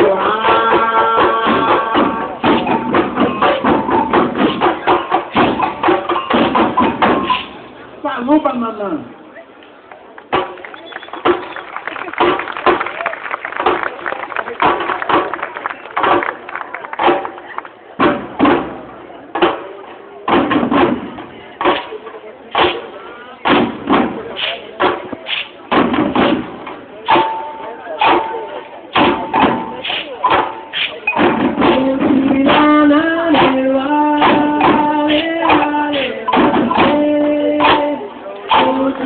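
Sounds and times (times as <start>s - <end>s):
drums in driving rhythm: 0.0s - 8.2s, 18.0s - 39.0s
women singing: 31.7s - 39.0s.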